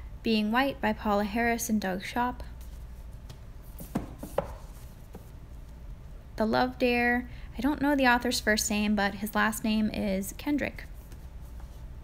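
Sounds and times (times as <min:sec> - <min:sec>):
books knocking and scraping on shelf: 0:03.7 - 0:05.3.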